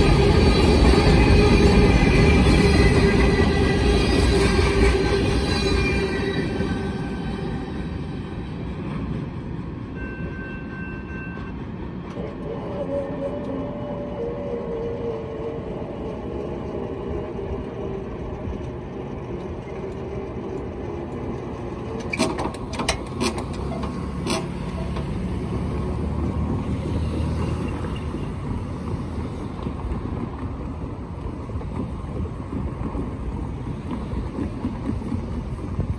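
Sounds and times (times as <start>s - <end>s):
trains rumbling: 0.0s - 35.9s.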